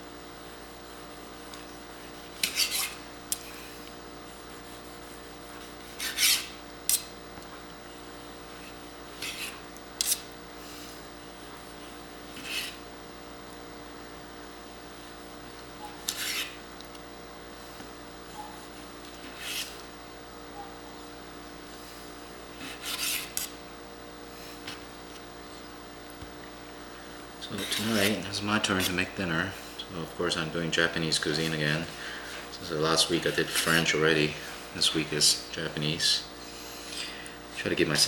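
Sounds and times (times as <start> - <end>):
steady low hum: 0.0 - 38.0
knife scraping cutting board: 1.4 - 3.7, 4.4 - 7.1, 8.5 - 10.3, 11.8 - 12.8, 15.8 - 16.6, 18.4 - 19.8, 22.5 - 23.6, 27.4 - 29.2, 33.2 - 34.5
knife slicing onto cutting board: 16.0 - 16.6.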